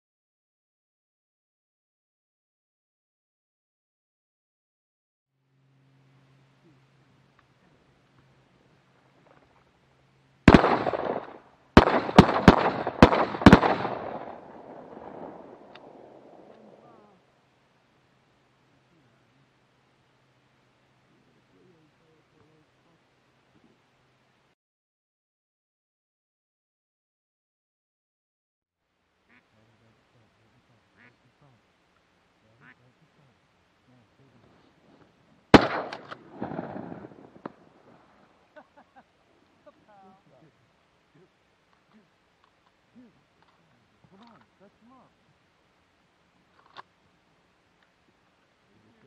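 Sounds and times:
shotgun blasts echoing: 0:10.5 - 0:16.6, 0:35.5 - 0:38.0
duck quacking: 0:29.3 - 0:29.8, 0:30.9 - 0:31.3, 0:32.6 - 0:32.9.

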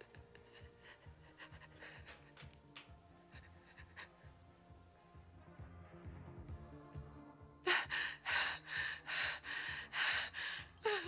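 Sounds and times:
woman panting: 0:00.0 - 0:02.5, 0:03.2 - 0:04.7, 0:07.6 - 0:11.0.

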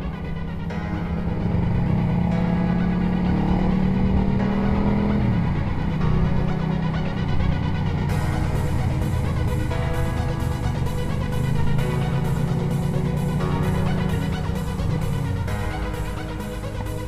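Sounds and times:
background music with beat: 0:00.0 - 0:17.0
motorcycle engine running: 0:00.0 - 0:17.0.

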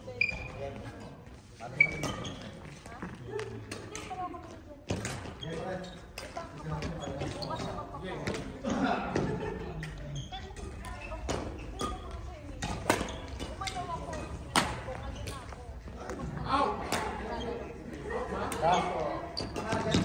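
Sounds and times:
players' voices: 0:00.0 - 0:20.0
racket striking shuttlecock: 0:10.8 - 0:14.9.

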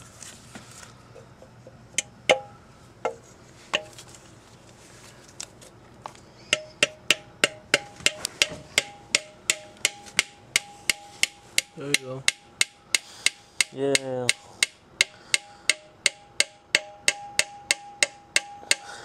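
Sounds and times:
metallic hand tool taps: 0:06.5 - 0:18.9.

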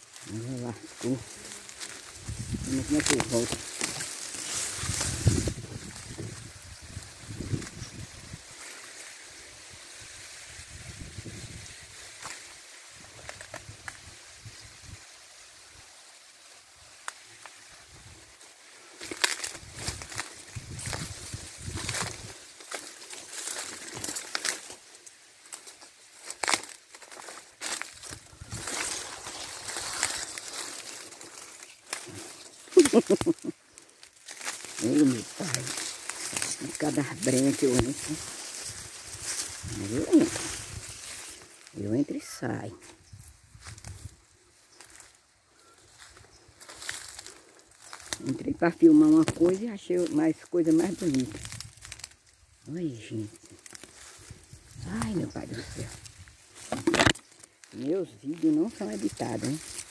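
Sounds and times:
dry grass and leaves rustling: 0:00.0 - 0:59.9.

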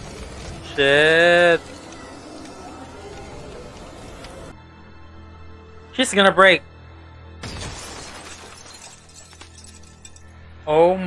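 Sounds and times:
background music: 0:00.0 - 0:11.0
frozen body shattering like ice: 0:07.4 - 0:10.3
glass-like pieces clinking: 0:07.4 - 0:10.3.

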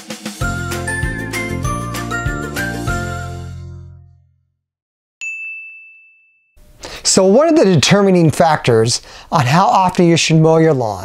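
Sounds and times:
high ding chime: 0:05.2 - 0:06.7.

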